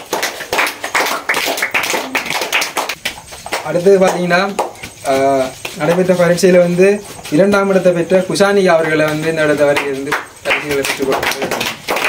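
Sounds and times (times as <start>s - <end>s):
group clapping hands: 0.0s - 6.3s, 8.5s - 12.0s.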